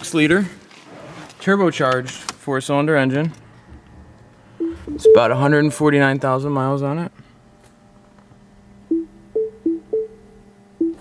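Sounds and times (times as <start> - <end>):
faint steady hum: 3.2 - 11.0
two-note electronic warning chime: 4.6 - 6.1.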